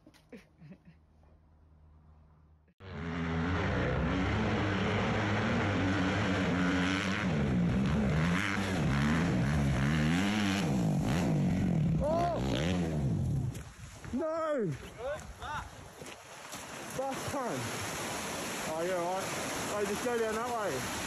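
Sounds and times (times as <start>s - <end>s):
dirt bike engine revving: 2.8s - 13.5s.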